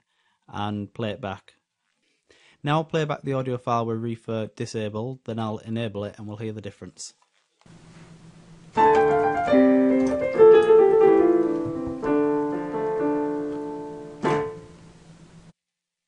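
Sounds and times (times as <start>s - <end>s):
piano playing slow held notes: 8.8s - 14.9s.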